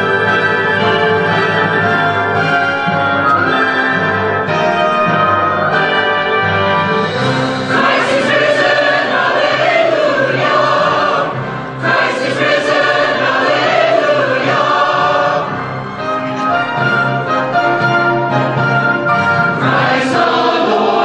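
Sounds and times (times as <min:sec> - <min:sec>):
church choir singing: 0:07.1 - 0:16.3, 0:19.4 - 0:21.0.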